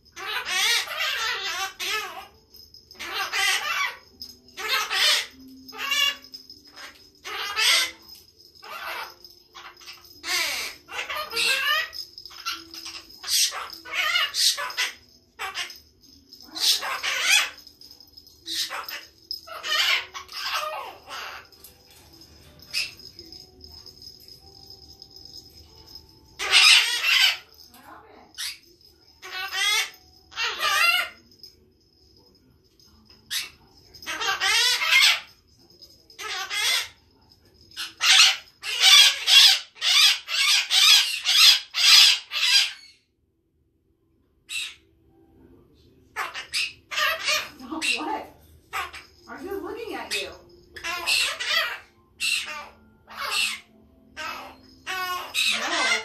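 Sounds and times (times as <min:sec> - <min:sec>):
loud parrot calls: 0:00.1 - 0:02.3, 0:03.0 - 0:17.6, 0:18.5 - 0:21.6, 0:25.9 - 0:27.6, 0:28.4 - 0:31.2, 0:33.3 - 0:35.4, 0:36.2 - 0:37.0, 0:37.8 - 0:43.0, 0:46.1 - 0:56.0
parrot chattering and squawking: 0:00.1 - 0:31.6, 0:33.1 - 0:43.1, 0:44.4 - 0:44.9, 0:46.1 - 0:56.0.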